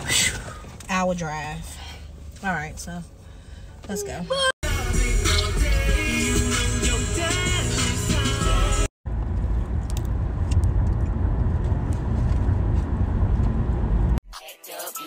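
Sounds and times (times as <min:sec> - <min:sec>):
song with singing: 0:04.6 - 0:08.9
car cabin rumble: 0:09.1 - 0:14.2.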